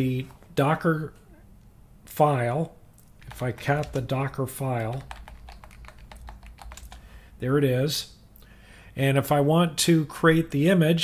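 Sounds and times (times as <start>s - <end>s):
typing on computer keyboard: 3.2s - 7.1s.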